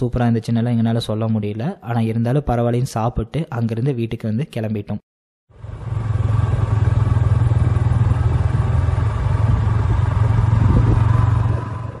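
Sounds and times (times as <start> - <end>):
vehicle engine humming: 5.5 - 12.0.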